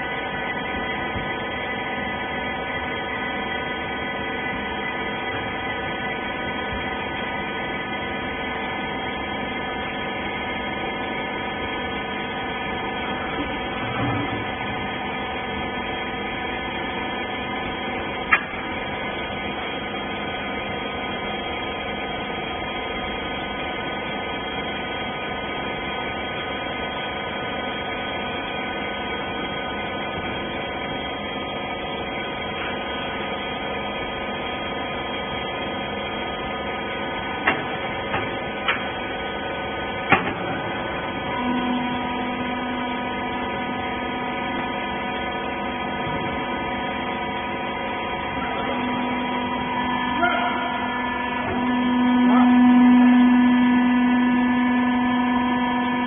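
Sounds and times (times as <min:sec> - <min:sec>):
low hum of pump under load: 0:00.0 - 0:56.0
motor and pump humming: 0:00.0 - 0:56.0.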